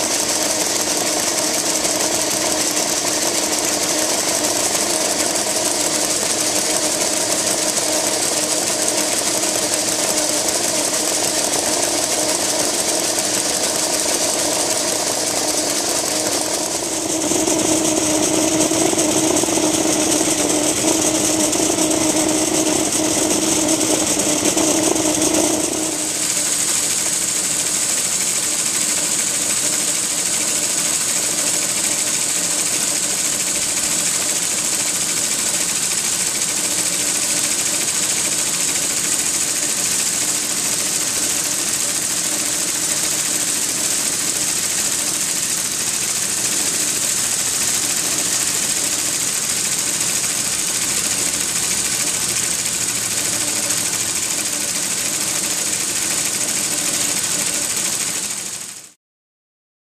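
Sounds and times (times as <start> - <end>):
steam hissing: 0.0 - 58.9
mechanical running noise: 0.0 - 59.0
humming tone: 3.6 - 26.4.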